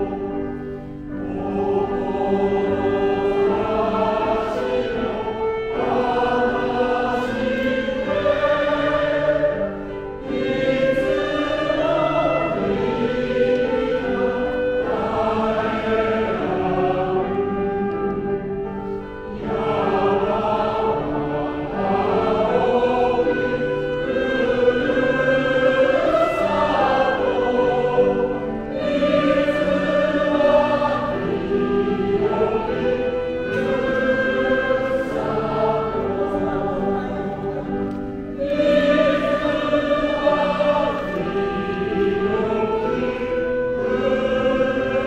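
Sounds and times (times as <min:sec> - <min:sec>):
men's chorus singing: 0:00.0 - 0:18.0, 0:19.2 - 0:45.0
soprano singing: 0:00.0 - 0:45.0.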